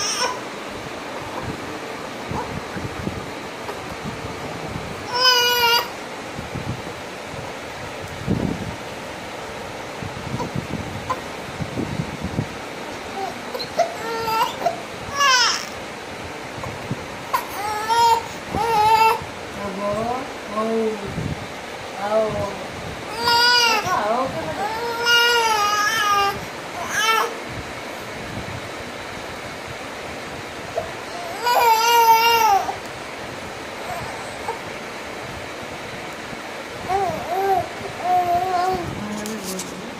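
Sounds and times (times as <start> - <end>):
baby crying: 0.0 - 0.4, 5.1 - 6.0, 13.1 - 15.8, 17.3 - 19.2, 23.1 - 24.0, 24.6 - 27.3, 31.0 - 32.8, 36.8 - 38.9
steady background hiss: 0.0 - 39.9.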